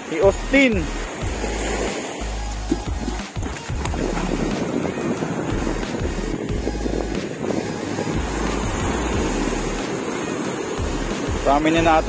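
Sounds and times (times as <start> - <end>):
waves breaking: 0.0 - 12.0
wind rumbling on microphone: 0.0 - 12.0.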